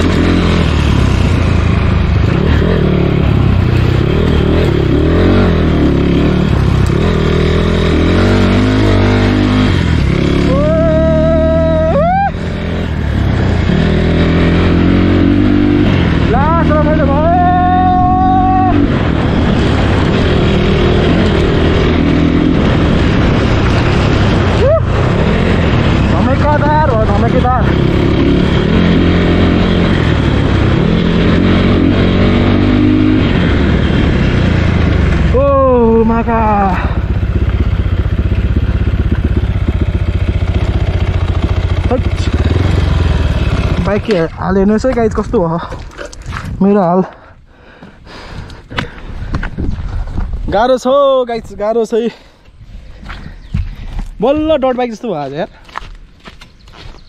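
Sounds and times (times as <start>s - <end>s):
dirt bike engine revving: 0.0s - 44.9s
voice calling out: 10.4s - 12.4s, 16.7s - 18.9s.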